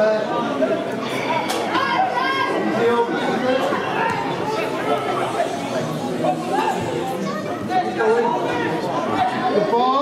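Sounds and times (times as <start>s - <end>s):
players and spectators calling out: 0.0s - 10.0s.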